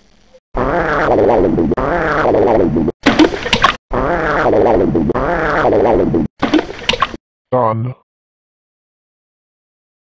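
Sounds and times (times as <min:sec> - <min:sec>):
wavering cartoon fart sound: 0:00.6 - 0:07.1.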